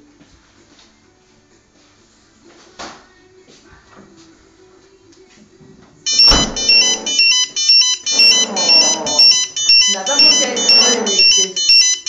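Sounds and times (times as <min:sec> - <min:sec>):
pager electronic beeping: 0:06.1 - 0:12.0.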